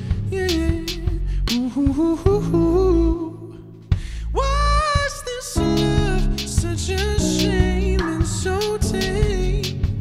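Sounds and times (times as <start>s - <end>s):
wordless sung vocal: 0.0s - 10.0s
drum hit: 5.0s - 10.0s.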